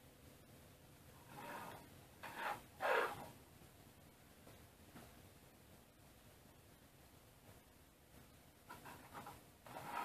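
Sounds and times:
metal rod sliding through bearings: 1.3 - 3.3, 9.7 - 10.0.

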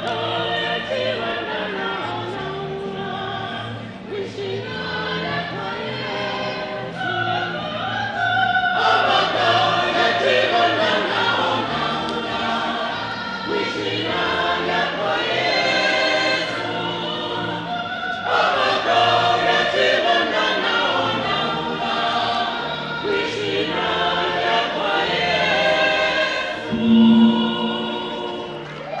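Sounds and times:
church choir singing: 0.0 - 29.0.

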